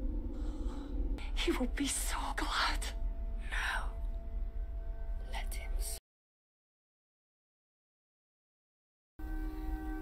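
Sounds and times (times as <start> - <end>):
low steady hum: 0.0 - 6.0
person whispering: 1.2 - 4.0, 5.2 - 6.0.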